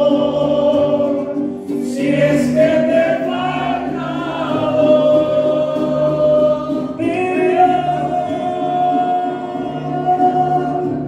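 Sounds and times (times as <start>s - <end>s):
mariachi band playing: 0.0s - 11.0s.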